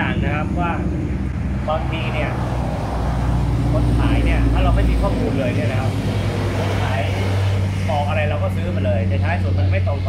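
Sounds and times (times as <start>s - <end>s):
man talking: 0.0s - 1.0s, 1.6s - 2.6s, 3.6s - 10.0s
low motor drone: 0.0s - 10.0s.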